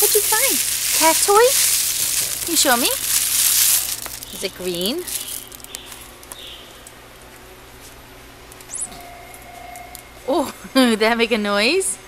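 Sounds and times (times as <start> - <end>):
electronic bird chirp: 8.7 - 10.3
electronic held tone: 8.7 - 10.8.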